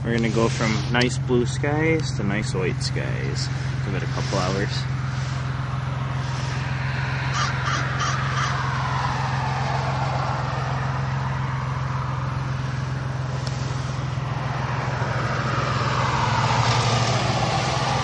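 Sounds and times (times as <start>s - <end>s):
passing road noise: 0.0s - 18.0s
steady low hum: 0.0s - 18.0s
crow cawing: 7.2s - 8.8s.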